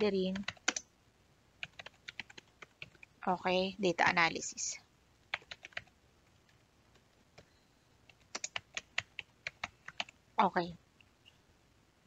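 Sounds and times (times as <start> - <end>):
computer keyboard typing: 0.3 - 0.9, 1.6 - 3.1, 5.3 - 5.9, 8.1 - 10.2.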